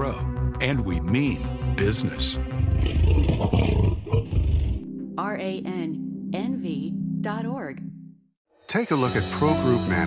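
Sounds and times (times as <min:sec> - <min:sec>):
big cat roaring: 0:02.6 - 0:04.9.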